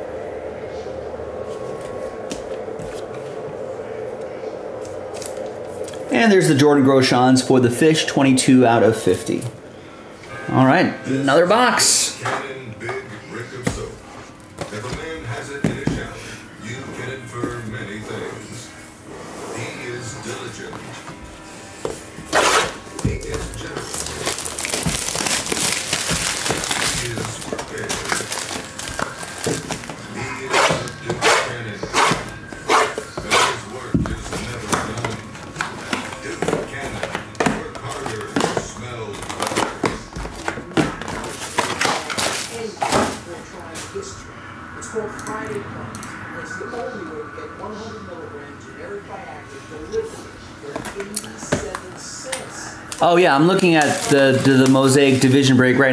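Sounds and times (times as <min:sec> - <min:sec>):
plastic shrink wrap crinkling: 0:22.7 - 0:30.1, 0:34.2 - 0:43.8, 0:52.9 - 0:55.5.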